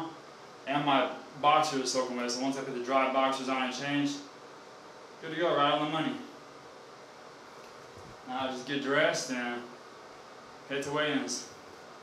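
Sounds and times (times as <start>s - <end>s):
faint steady hiss: 0.0s - 12.0s
man speaking: 0.7s - 4.3s, 5.2s - 6.3s, 8.2s - 9.7s, 10.7s - 11.5s.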